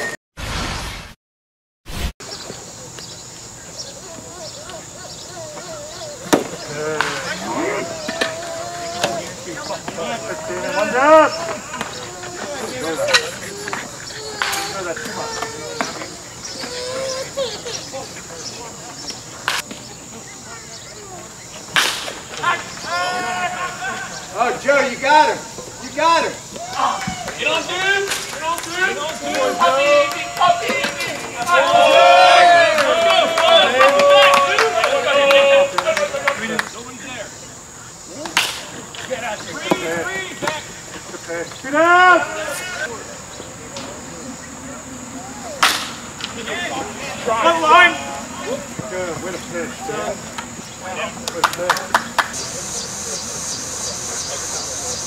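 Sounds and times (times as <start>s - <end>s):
spectators shouting: 3.8s - 19.6s, 22.3s - 37.3s, 39.0s - 51.3s
wooden bat hitting ball: 6.2s - 7.3s, 45.6s - 46.0s
bat hitting ball crack: 6.2s - 8.4s, 21.7s - 22.5s, 38.2s - 38.8s, 45.6s - 46.4s.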